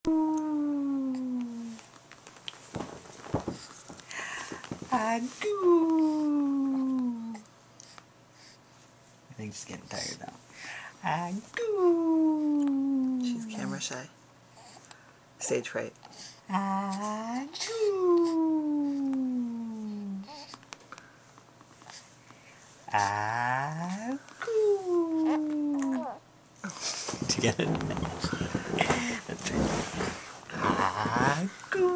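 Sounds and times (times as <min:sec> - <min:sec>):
infant cooing: 0:00.1 - 0:01.8, 0:17.6 - 0:20.5, 0:24.4 - 0:26.2.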